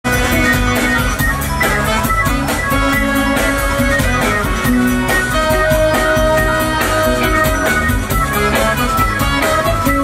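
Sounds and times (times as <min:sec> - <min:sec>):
bass guitar: 0:00.0 - 0:10.0
drum kit steady beat: 0:00.0 - 0:10.0
electric guitar picking notes: 0:00.1 - 0:10.0.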